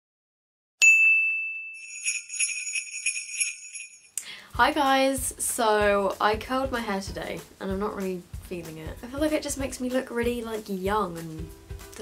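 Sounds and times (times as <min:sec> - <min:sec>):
bright bell chime: 0:00.8 - 0:04.2
sleigh bells jingling: 0:01.8 - 0:04.2.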